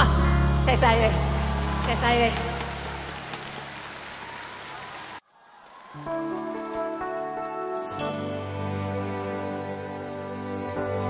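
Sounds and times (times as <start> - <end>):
audience applauding: 0.8 - 7.0.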